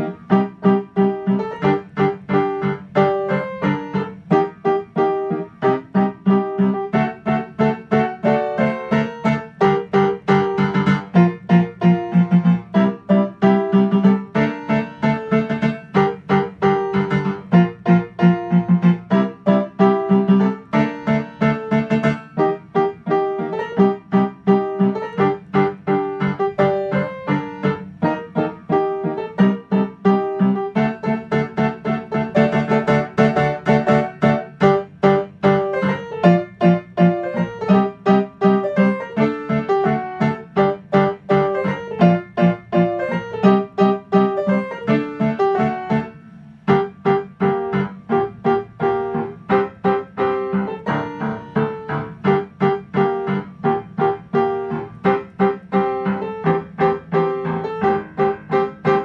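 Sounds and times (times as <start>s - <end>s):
piano playing: 0.0s - 59.0s.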